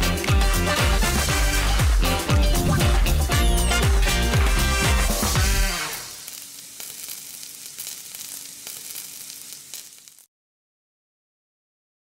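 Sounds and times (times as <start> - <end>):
oil sizzling in a frying pan: 3.6 - 10.3
crackling pops: 5.7 - 10.3.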